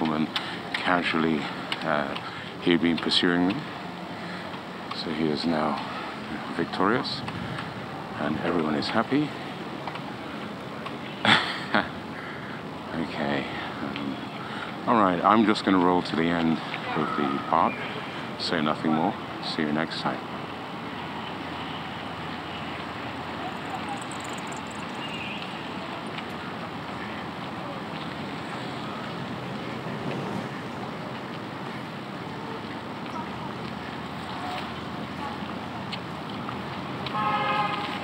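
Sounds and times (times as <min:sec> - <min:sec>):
faint voices: 0:00.0 - 0:38.0
wind: 0:00.0 - 0:38.0.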